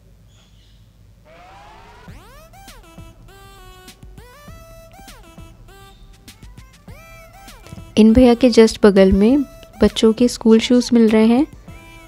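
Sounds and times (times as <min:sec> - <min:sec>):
rising electronic whoosh: 0:01.3 - 0:02.4
electronic music: 0:01.3 - 0:10.2.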